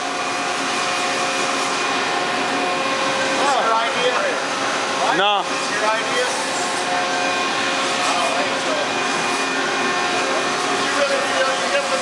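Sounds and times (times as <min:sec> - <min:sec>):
machine tools hissing and humming: 0:00.0 - 0:12.0.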